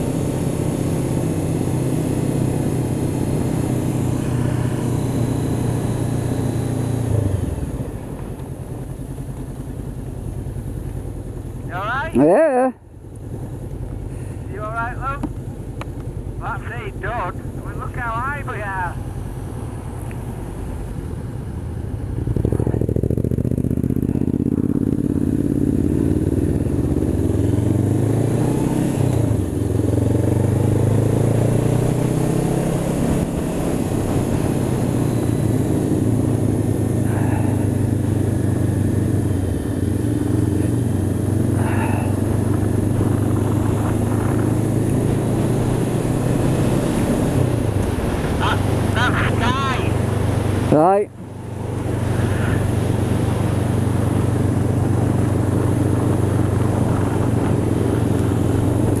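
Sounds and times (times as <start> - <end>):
motorcycle engine pulling away: 0.0 - 11.6, 20.9 - 49.0, 50.0 - 59.0.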